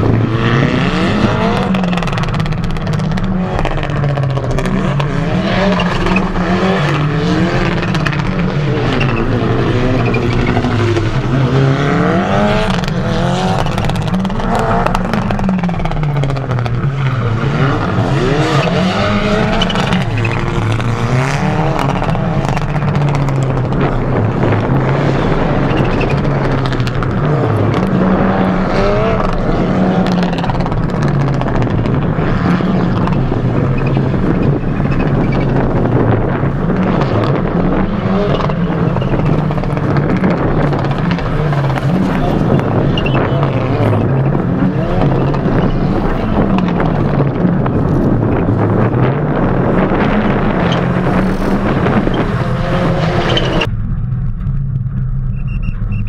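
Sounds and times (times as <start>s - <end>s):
rally car engine revving: 0.0s - 56.0s.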